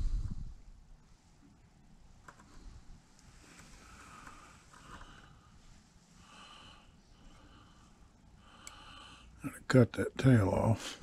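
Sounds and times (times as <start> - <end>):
soft breathing through nose: 0.0 - 1.5, 2.4 - 9.4.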